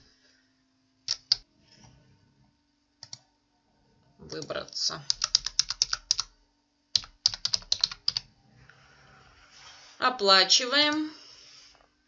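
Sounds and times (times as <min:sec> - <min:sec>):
sharp computer clicks: 0:01.1 - 0:01.4, 0:04.4 - 0:06.3, 0:07.0 - 0:08.2.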